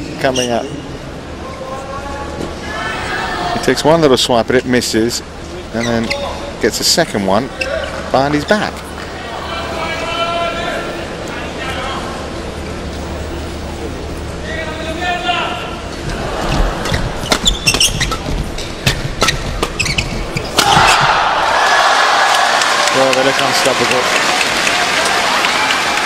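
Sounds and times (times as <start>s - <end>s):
crowd cheering and applause: 20.6s - 26.0s.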